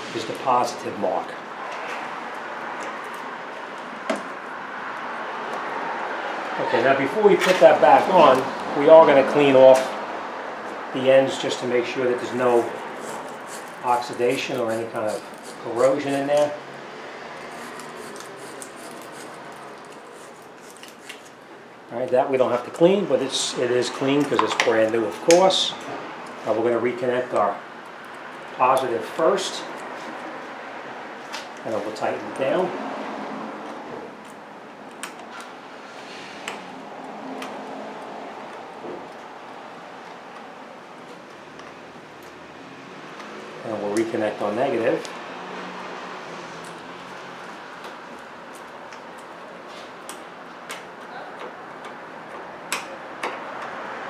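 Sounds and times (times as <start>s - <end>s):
steady background noise: 0.0s - 54.0s.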